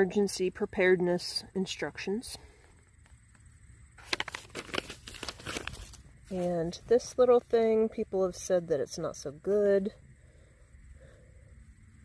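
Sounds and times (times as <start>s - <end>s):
paper and packaging crinkling: 4.0s - 6.6s.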